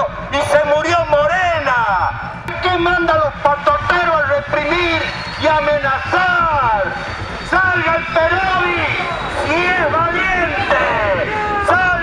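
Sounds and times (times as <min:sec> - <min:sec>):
man shouting through megaphone: 0:00.0 - 0:12.0
steady low rumble: 0:00.0 - 0:12.0.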